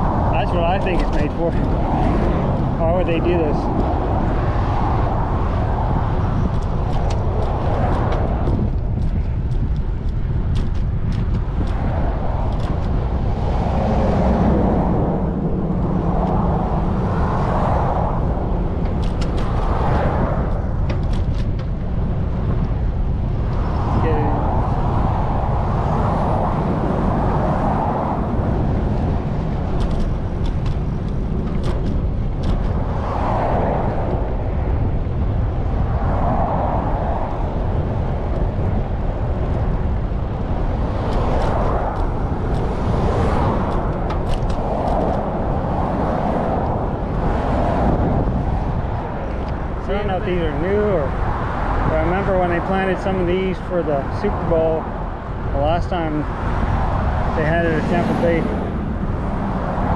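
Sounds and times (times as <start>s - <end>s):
road traffic passing: 0.0s - 59.9s
wind rumbling on microphone: 0.0s - 59.9s.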